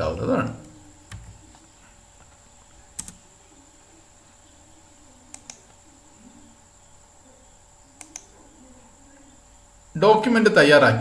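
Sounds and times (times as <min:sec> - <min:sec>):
faint electrical hum: 0:00.0 - 0:11.0
thin high whine: 0:00.0 - 0:11.0.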